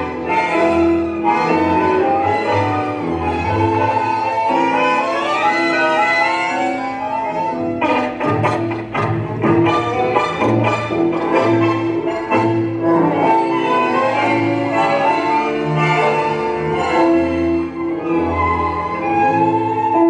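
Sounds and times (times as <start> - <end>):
tango orchestra with bowed strings: 0.0 - 20.0.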